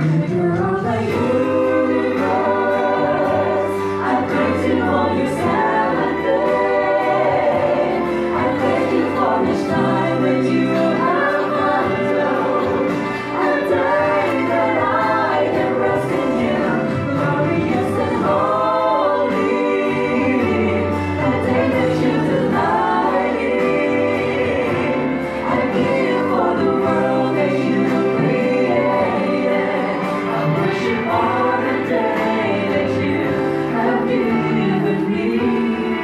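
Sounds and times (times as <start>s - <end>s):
vocal group singing in harmony: 0.0s - 36.0s.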